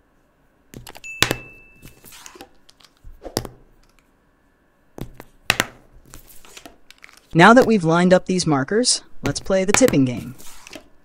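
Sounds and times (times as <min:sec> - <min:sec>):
markers set down on paper: 0:00.8 - 0:04.0, 0:05.0 - 0:07.3
short ringing tone: 0:01.0 - 0:02.0.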